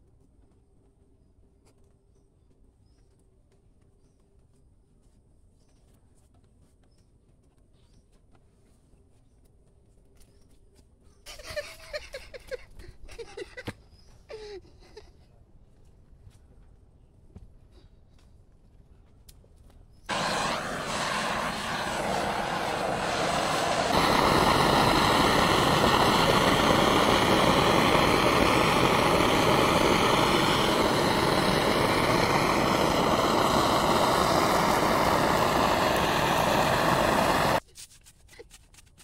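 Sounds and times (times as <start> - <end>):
blowtorch hissing roar: 20.1 - 37.6.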